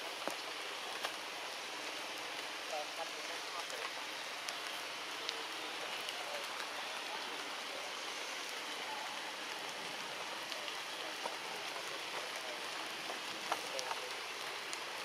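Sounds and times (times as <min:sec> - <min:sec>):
forest background hiss: 0:00.0 - 0:15.0.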